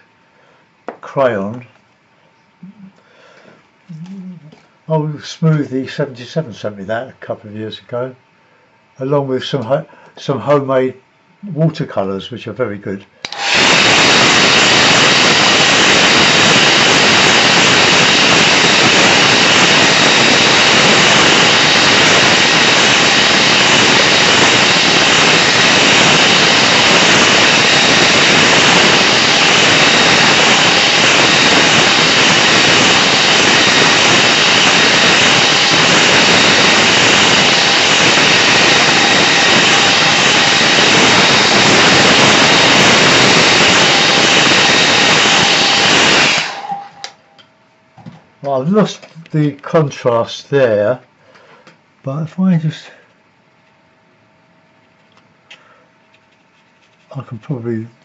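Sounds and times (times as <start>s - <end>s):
hairdryer blowing: 13.2s - 47.2s
hairdryer motor whine: 13.2s - 47.4s.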